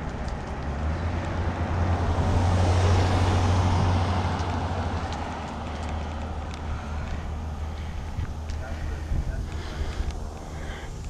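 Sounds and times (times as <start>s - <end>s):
car passing: 0.0s - 11.0s
steady low rumble: 0.0s - 11.0s.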